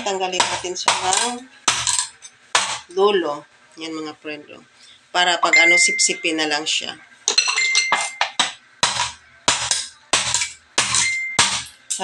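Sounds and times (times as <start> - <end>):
knife chopping on plastic board: 0.0 - 2.9, 8.2 - 11.7.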